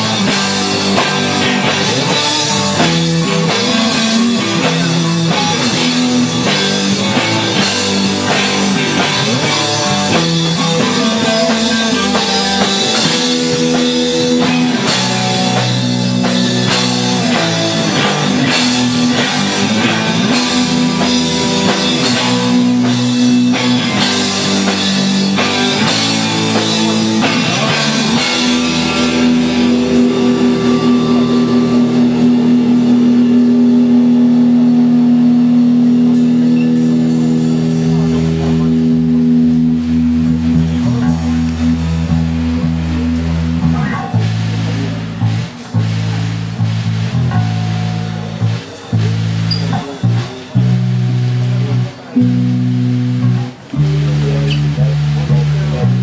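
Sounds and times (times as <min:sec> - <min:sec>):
live rock band playing loudly: 0:00.0 - 0:56.0.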